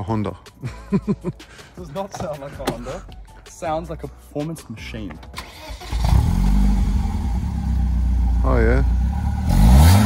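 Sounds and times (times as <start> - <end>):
car engine starting and idling: 5.2 - 10.0.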